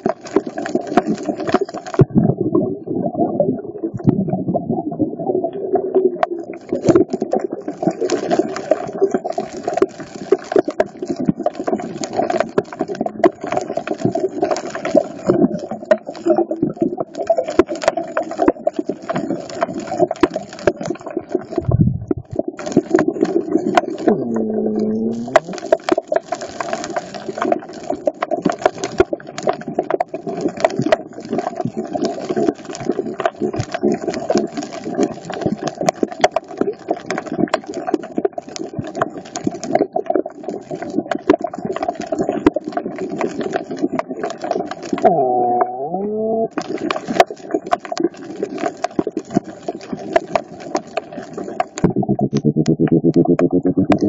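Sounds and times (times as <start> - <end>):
underwater crackle of tiny clicks: 0.0 - 2.7, 5.4 - 45.1, 46.5 - 54.0
low thump: 21.6 - 22.4.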